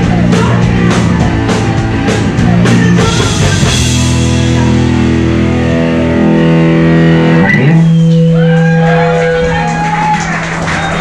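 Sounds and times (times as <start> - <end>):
electric guitar and bass chord ringing: 0.0 - 10.1.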